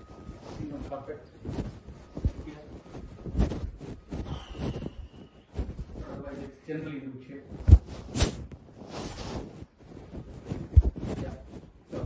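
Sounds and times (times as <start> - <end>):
phone rubbing against fabric: 0.0 - 12.0.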